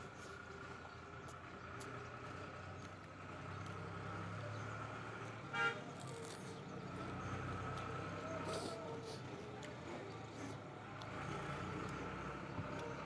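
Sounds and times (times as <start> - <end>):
engine running: 0.0 - 13.0
vehicle horn toot: 5.5 - 5.8.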